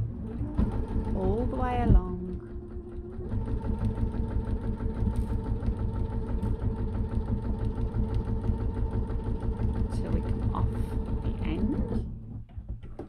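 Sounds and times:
sewing machine stitching: 0.0 - 13.0.

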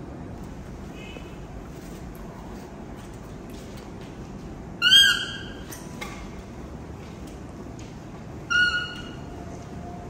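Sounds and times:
baby macaque high-pitched call: 4.8 - 5.7, 8.4 - 9.3.

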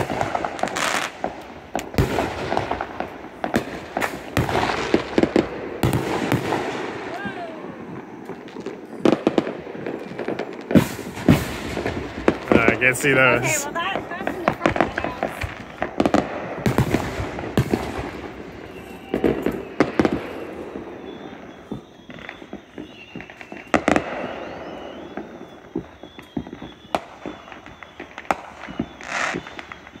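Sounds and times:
fireworks popping and banging: 0.0 - 30.0.

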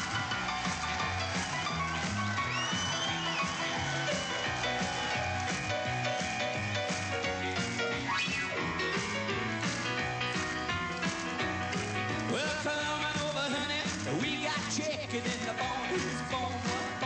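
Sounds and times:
rock and roll band with piano: 0.0 - 17.0.

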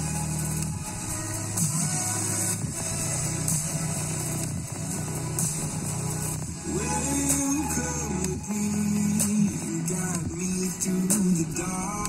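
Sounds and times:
bass-heavy music through speaker: 0.0 - 12.0.

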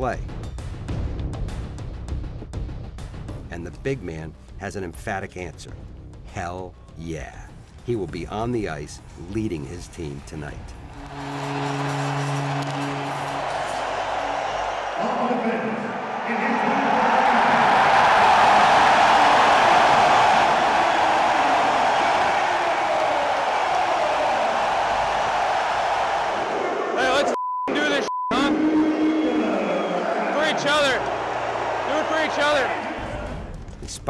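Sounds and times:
crowd cheering: 10.2 - 33.6
people shouting: 16.0 - 33.5
bleep tone: 27.4 - 28.6.

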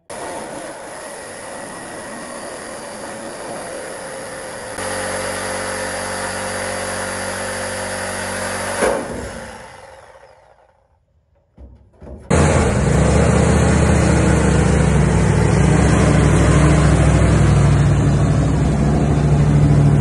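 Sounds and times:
power tool cutting sheet steel: 0.0 - 10.9.

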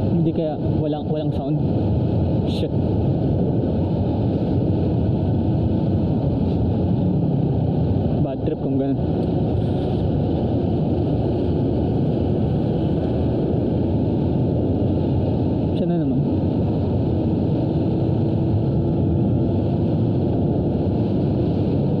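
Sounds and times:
rush of riding wind: 0.0 - 22.0.

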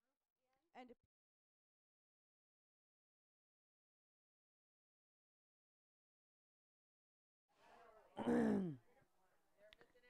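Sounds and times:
faint voice: 7.6 - 8.9.

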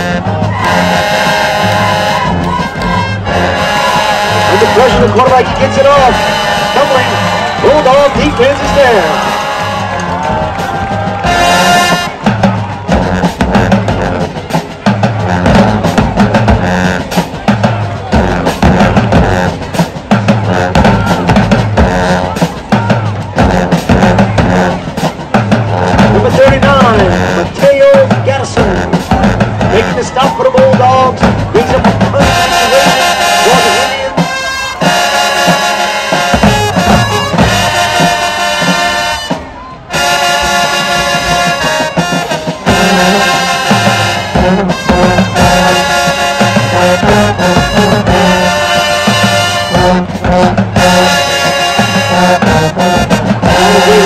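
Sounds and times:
crowd voices: 0.0 - 54.0
drumline playing cadence: 0.0 - 54.0
marching band brass playing: 0.0 - 54.0.

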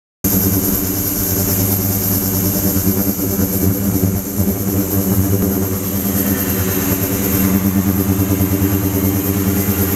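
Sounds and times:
thin high-pitched whine: 0.3 - 9.9
ultrasonic tank hum: 0.3 - 9.9.

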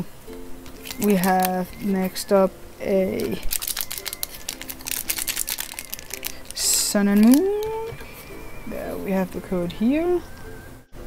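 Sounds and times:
foil wrapper crinkling: 0.7 - 2.3, 3.0 - 7.8.

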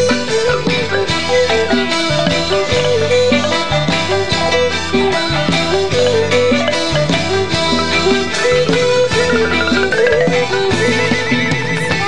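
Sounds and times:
bamboo flute: 0.0 - 12.0
hammered dulcimer: 0.0 - 12.0
xylophone: 0.0 - 12.0.

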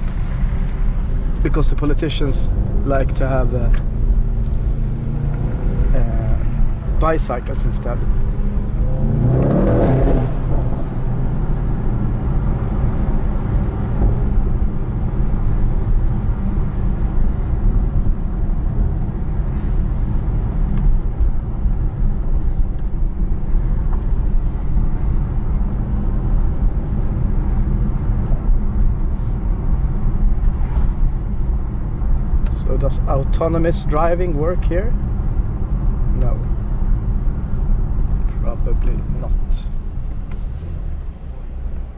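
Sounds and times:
car engine rumble: 0.0 - 41.9.

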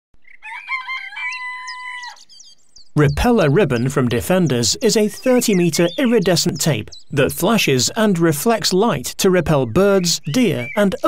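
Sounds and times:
small birds chirping: 0.2 - 11.0
rooster crowing: 0.4 - 2.3.

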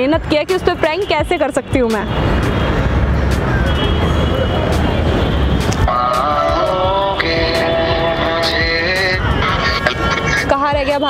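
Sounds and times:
urban background noise: 0.0 - 11.0
vehicle engines rumbling: 0.0 - 11.0.

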